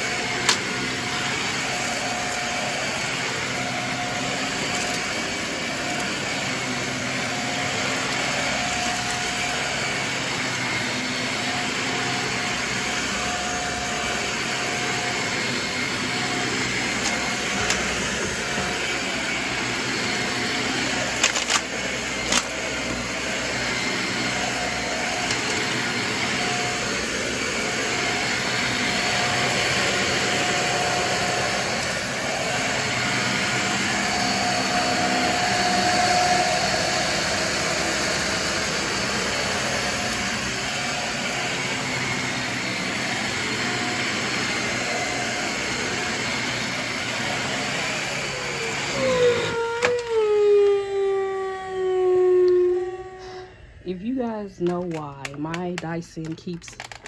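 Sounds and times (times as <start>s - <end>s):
vacuum cleaner on carpet: 0.0s - 57.0s.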